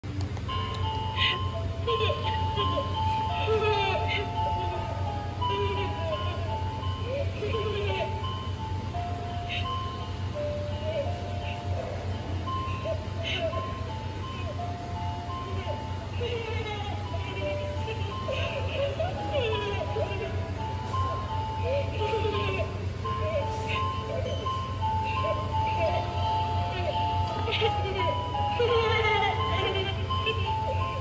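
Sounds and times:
steady low hum: 0:00.0 - 0:31.0
slow chiming melody: 0:00.5 - 0:31.0
child's voice: 0:01.1 - 0:08.5, 0:09.3 - 0:31.0.

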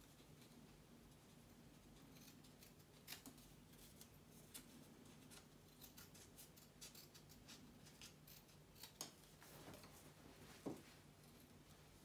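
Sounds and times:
scissors snipping tape: 0:05.3 - 0:09.3.

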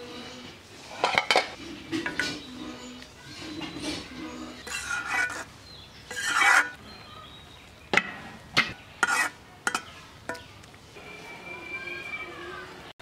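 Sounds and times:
metal ladle scraping pan: 0:00.9 - 0:06.8, 0:09.0 - 0:10.5
ladle clacking against pan: 0:09.0 - 0:10.5.

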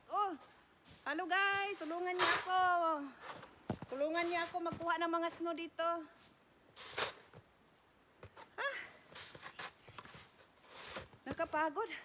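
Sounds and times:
snow shovel scraping snow: 0:01.8 - 0:03.4, 0:04.0 - 0:04.7, 0:06.8 - 0:07.4, 0:09.2 - 0:11.2.

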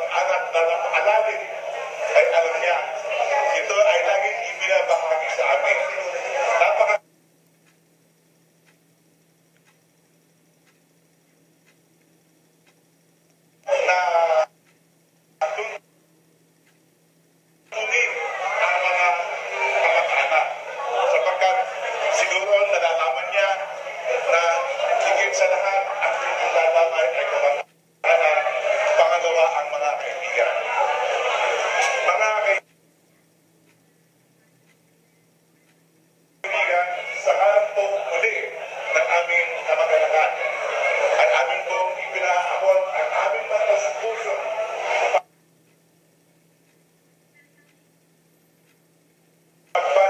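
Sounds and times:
man speaking into microphone: 0:00.0 - 0:07.0, 0:13.7 - 0:14.5, 0:15.4 - 0:15.8, 0:17.7 - 0:30.9, 0:31.8 - 0:32.6, 0:36.4 - 0:45.2, 0:49.8 - 0:50.0
faint clock-like ticking: 0:00.4 - 0:18.6, 0:19.2 - 0:28.0, 0:29.6 - 0:40.4, 0:45.2 - 0:50.0.

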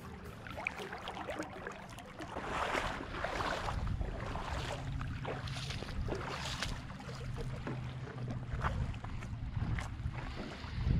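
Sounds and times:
seawater sloshing and splashing: 0:00.0 - 0:10.9
wind rumbling on microphone: 0:02.3 - 0:10.9.

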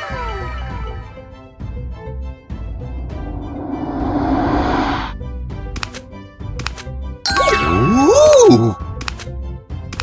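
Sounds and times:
swooping tone: 0:02.5 - 0:05.2
background music: 0:05.1 - 0:10.0
cartoon sparkle chimes: 0:07.3 - 0:09.0.

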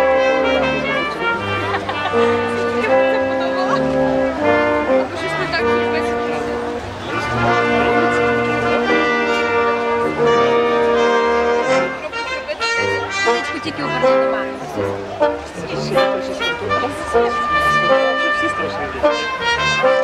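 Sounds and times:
brass music: 0:00.0 - 0:20.0.

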